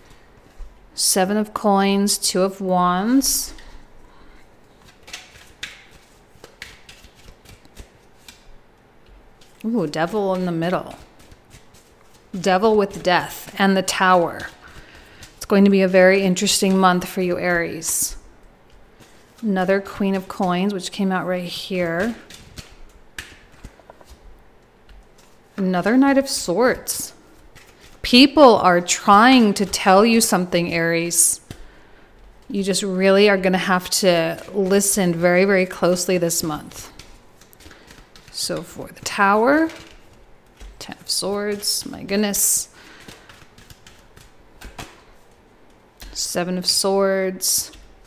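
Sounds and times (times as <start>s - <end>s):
cards being shuffled: 3.5s - 32.8s, 33.4s - 46.3s.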